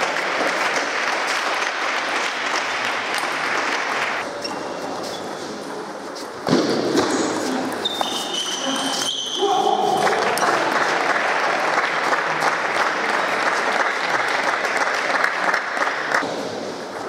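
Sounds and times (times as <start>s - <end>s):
applause and crowd noise: 0.0s - 4.3s, 9.9s - 16.4s.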